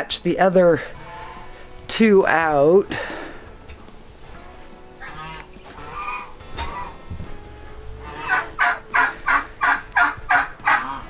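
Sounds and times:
geese honking: 0.0 - 11.0.

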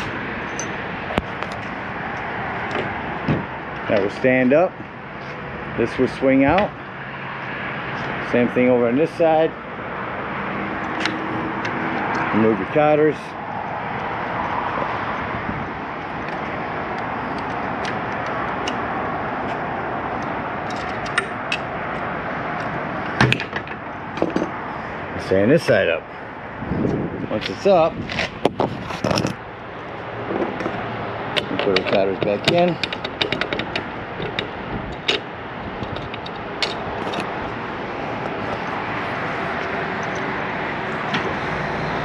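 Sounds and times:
sharp metal clicks: 10.8 - 12.3, 20.2 - 21.7, 31.3 - 37.3.

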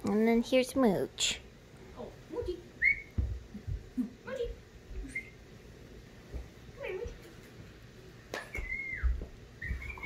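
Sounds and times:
dull thumps on floor: 3.1 - 3.9.

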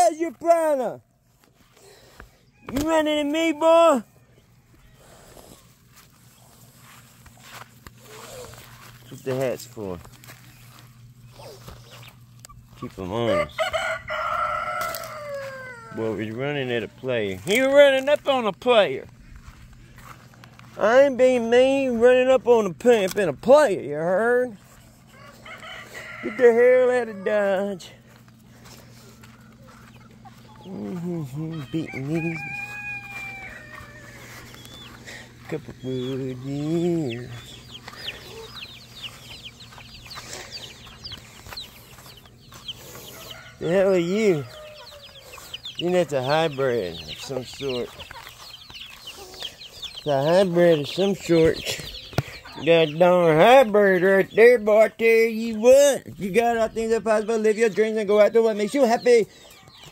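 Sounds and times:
chicks peeping: 0.0 - 59.9
rooster crowing: 13.2 - 16.1, 25.1 - 27.9, 31.2 - 35.0, 43.0 - 45.6.

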